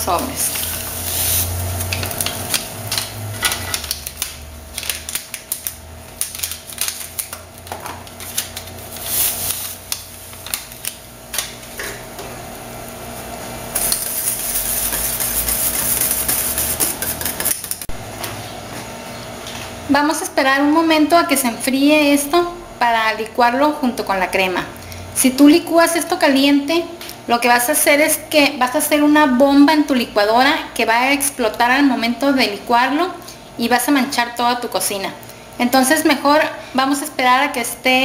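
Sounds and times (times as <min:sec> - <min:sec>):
utensil scraping metal pot: 0:13.8 - 0:17.9.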